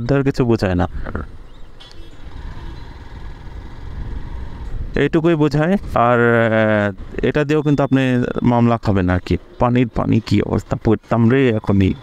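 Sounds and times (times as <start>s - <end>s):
motorcycle engine rumbling: 0.8s - 12.0s.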